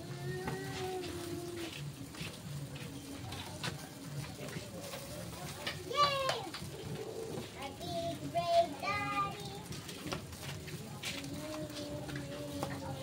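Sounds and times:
faint background voices: 0.0 - 13.0.

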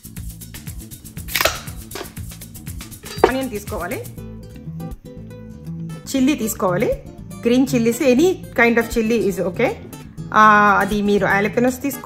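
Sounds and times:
background music: 0.0 - 12.0
knife scraping out of blade guard: 1.3 - 2.2, 3.0 - 3.5.

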